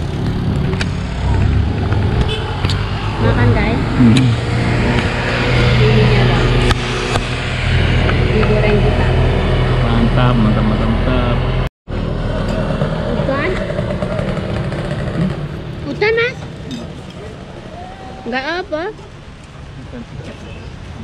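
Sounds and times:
vehicle engine running: 0.0s - 17.5s.

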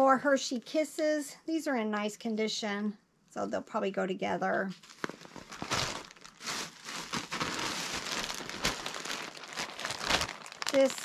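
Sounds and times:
plastic bag rustling and crinkling: 4.7s - 11.0s.

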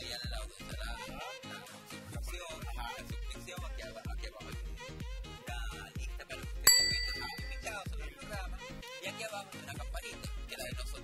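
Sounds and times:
background music with steady beat: 6.7s - 7.8s
bright bell ding: 6.7s - 7.8s.

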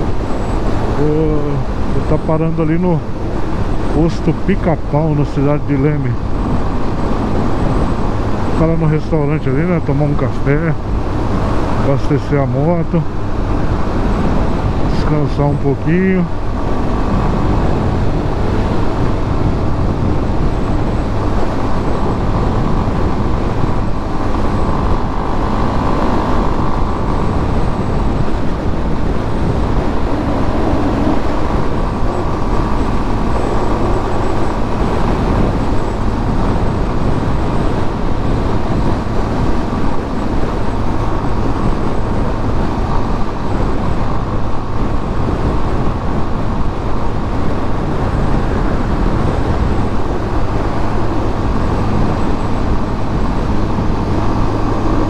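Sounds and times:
motorcycle engine cruising: 0.0s - 55.0s
wind and road noise: 0.0s - 55.0s.

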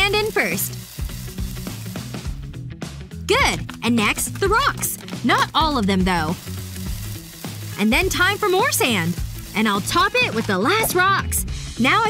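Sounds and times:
background music: 0.0s - 12.0s
sand pouring into plastic bottle: 6.3s - 10.5s.

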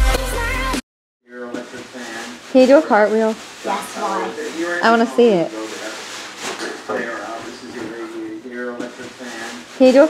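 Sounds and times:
young voices talking: 3.7s - 5.4s.

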